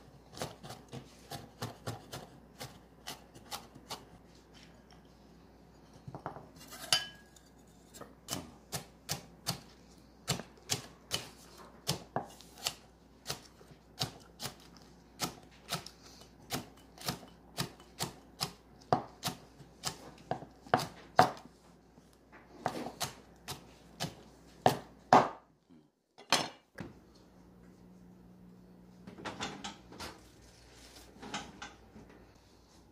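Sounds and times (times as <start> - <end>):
scrape and clink in bowl: 6.6 - 8.0.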